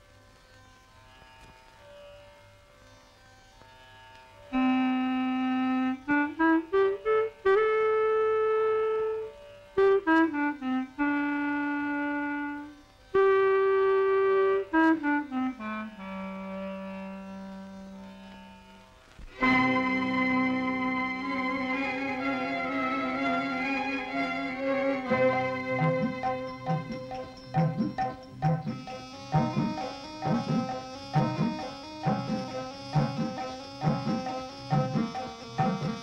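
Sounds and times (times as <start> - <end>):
solo clarinet-like woodwind melody: 4.5 - 18.5, 19.3 - 36.0.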